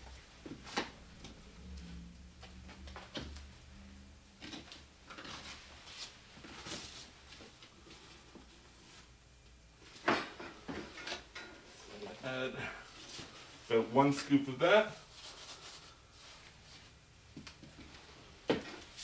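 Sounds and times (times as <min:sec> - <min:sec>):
faint low hum: 0:00.0 - 0:19.0.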